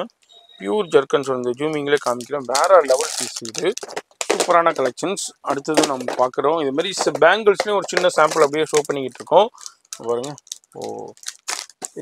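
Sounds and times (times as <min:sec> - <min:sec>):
person speaking: 0:00.0 - 0:12.0
plastic packet crinkling: 0:01.5 - 0:12.0.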